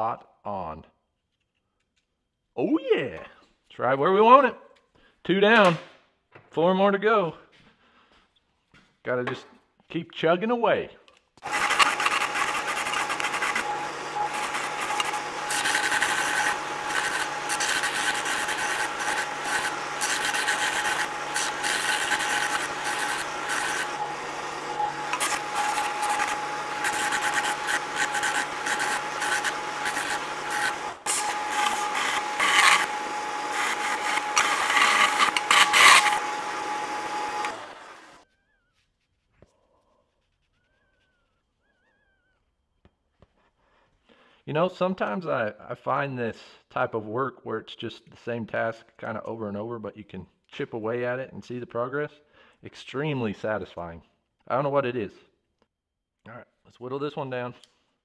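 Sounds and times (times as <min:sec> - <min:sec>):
belt sander whine: 0:11.4 - 0:38.2
steel grinding against belt: 0:11.4 - 0:38.2.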